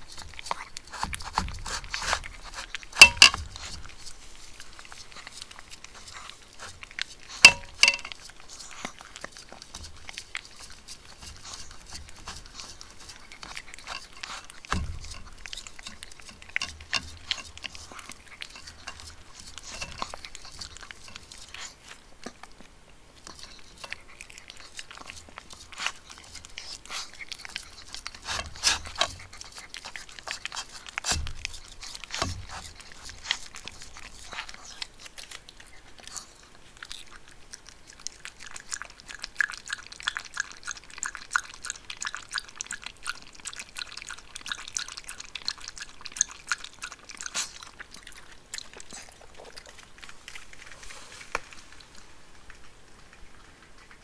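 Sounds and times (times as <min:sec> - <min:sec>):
dog crunching dry food: 0:00.0 - 0:54.0
dog lapping water: 0:37.0 - 0:50.3.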